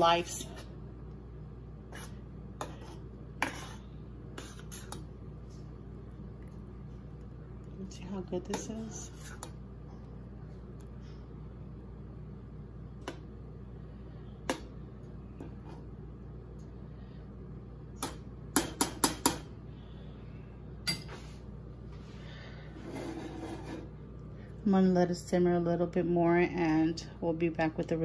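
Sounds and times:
low hum: 0.0s - 18.6s.

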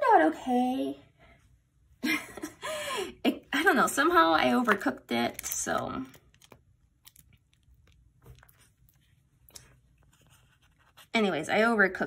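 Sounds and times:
sticker book pages rustling: 8.2s - 11.2s.

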